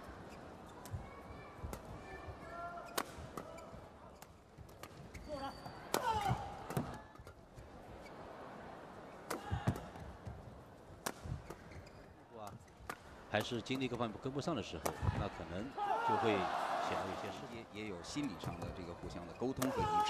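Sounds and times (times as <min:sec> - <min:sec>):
racket hitting shuttlecock: 0:02.8 - 0:03.5, 0:05.9 - 0:07.0, 0:09.2 - 0:10.0, 0:11.0 - 0:11.7, 0:12.8 - 0:13.5.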